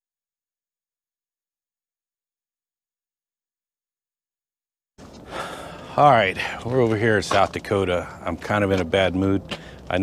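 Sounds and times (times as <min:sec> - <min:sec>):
background noise: 0:05.0 - 0:10.0
man sighing: 0:05.3 - 0:06.0
man speaking: 0:05.8 - 0:10.0.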